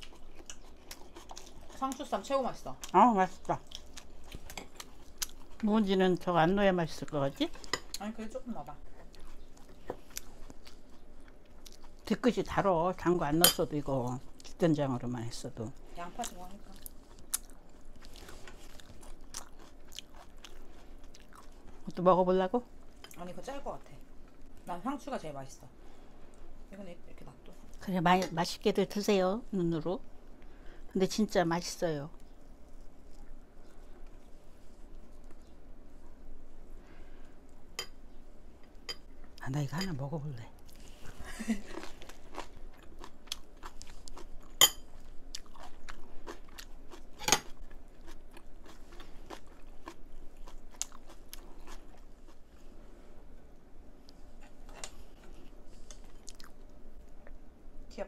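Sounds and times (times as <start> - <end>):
chewing crisp lettuce: 0.0 - 2.1, 16.2 - 21.9, 40.6 - 52.8.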